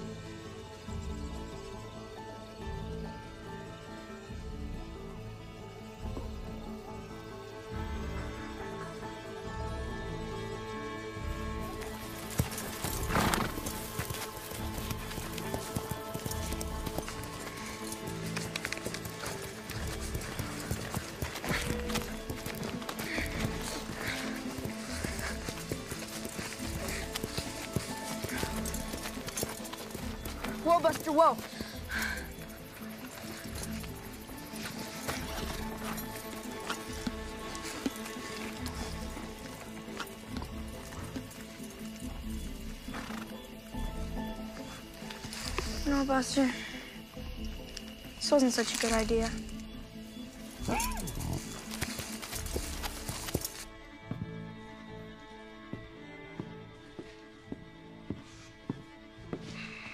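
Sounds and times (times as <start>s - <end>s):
film score music: 0.0s - 59.9s
horse hooves clip-clopping: 6.0s - 59.6s
horse whinnying: 12.9s - 13.8s, 50.6s - 51.6s.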